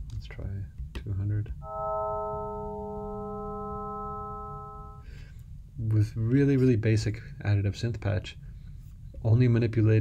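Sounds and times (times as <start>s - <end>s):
bell-like sustained synth tones: 1.6s - 5.1s.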